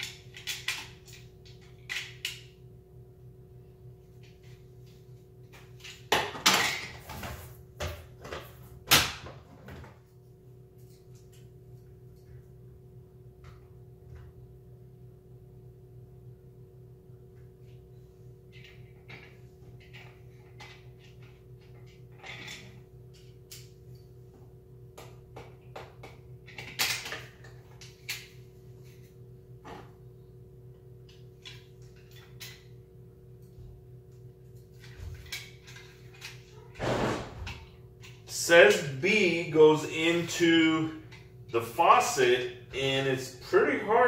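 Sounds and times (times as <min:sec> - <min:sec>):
small parts clicking and knocking: 0:00.0 - 0:02.5
steady low hum: 0:00.0 - 0:44.0.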